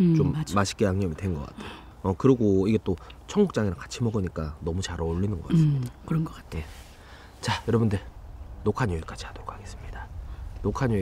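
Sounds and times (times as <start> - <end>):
man speaking: 0.2 - 6.8, 7.4 - 11.0.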